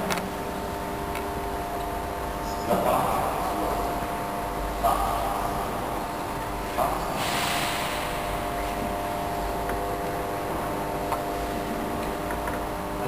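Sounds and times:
steady room tone hum: 0.0s - 13.0s
short hiss: 7.2s - 8.2s.

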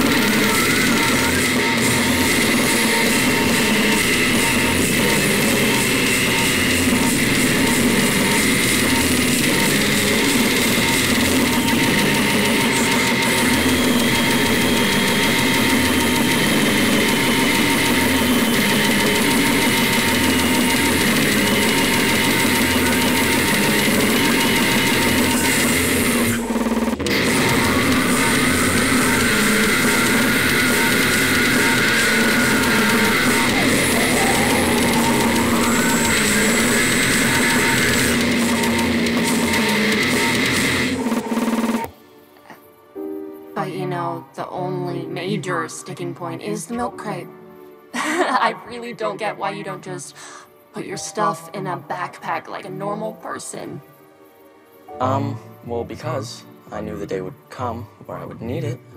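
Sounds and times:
death metal distorted guitars: 0.0s - 41.9s.

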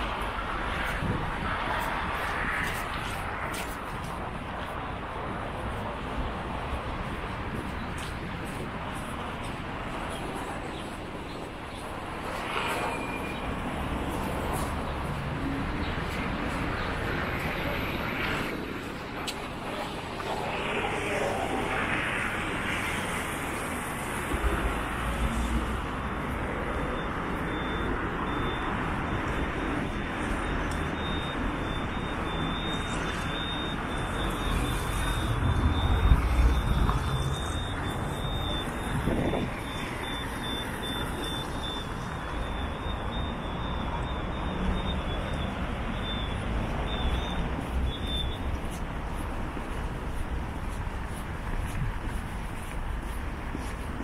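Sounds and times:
road traffic noise: 0.0s - 54.0s
vehicles passing rumble: 0.0s - 54.0s.

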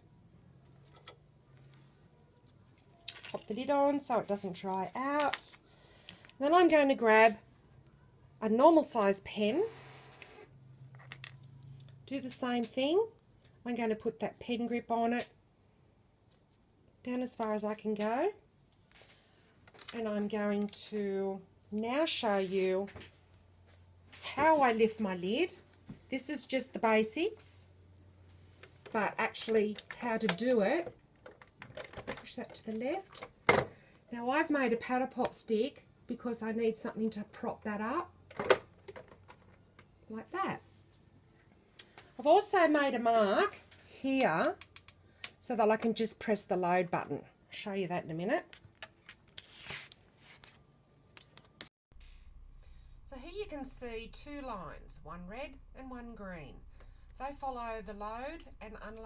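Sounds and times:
low steady hum: 51.9s - 59.0s.

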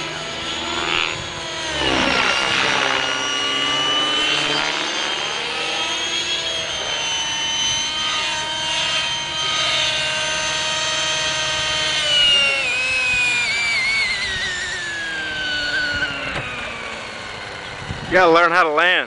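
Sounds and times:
model helicopter rotor whine: 0.0s - 19.0s.

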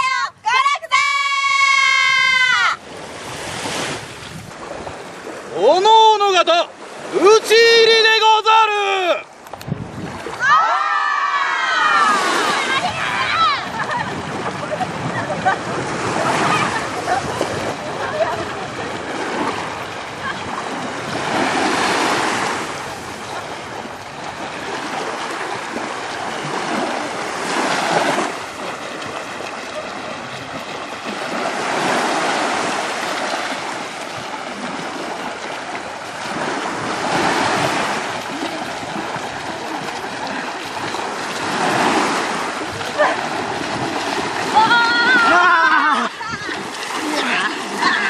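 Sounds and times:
small waves washing onto beach: 0.0s - 48.0s
people splashing in water: 1.0s - 48.0s.

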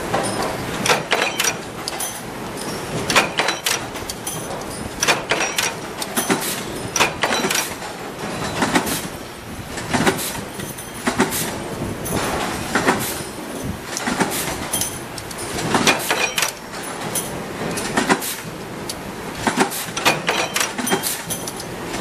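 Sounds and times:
stamping press metallic clanks: 0.0s - 9.2s, 9.8s - 18.6s, 19.3s - 22.0s.

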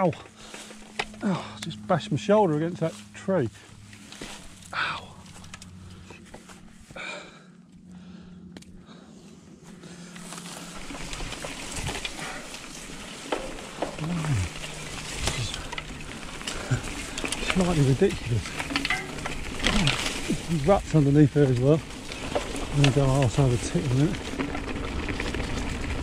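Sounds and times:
rider groaning: 0.0s - 1.9s, 4.6s - 6.2s, 6.9s - 9.1s, 9.9s - 24.3s
vegetation rustling against bike: 0.0s - 26.0s
rider grunting: 1.1s - 1.6s, 13.5s - 18.8s.

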